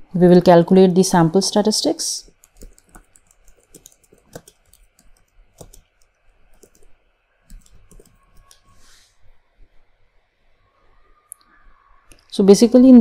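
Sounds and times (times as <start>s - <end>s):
computer keyboard typing: 2.2s - 8.8s.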